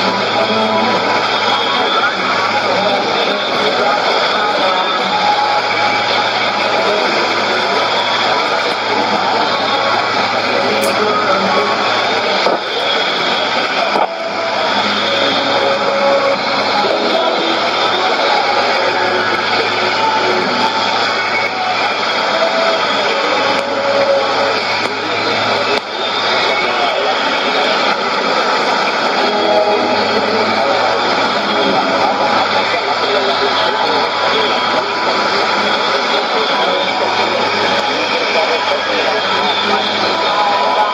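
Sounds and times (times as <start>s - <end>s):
faint radio voice: 0.0s - 40.9s
radio static hiss: 0.0s - 40.9s.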